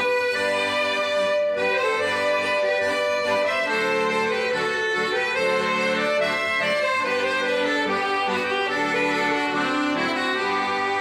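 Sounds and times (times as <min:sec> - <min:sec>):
accordion folk tune: 0:00.0 - 0:11.0.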